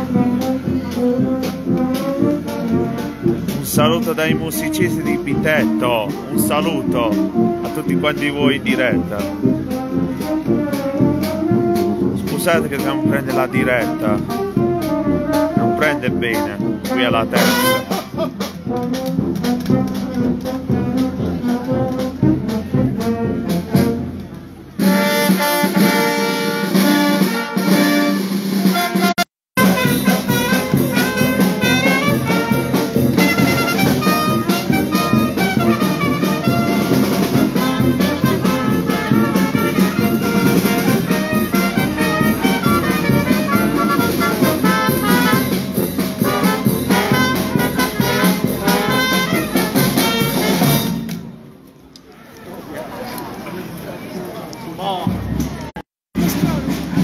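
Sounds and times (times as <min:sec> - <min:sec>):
wind band playing a march: 0:00.0 - 0:51.5, 0:56.2 - 0:57.0.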